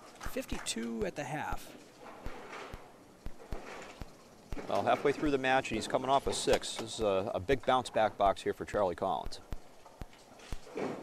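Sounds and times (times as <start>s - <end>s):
sharp clicks: 2.2s - 4.8s, 8.2s - 10.7s.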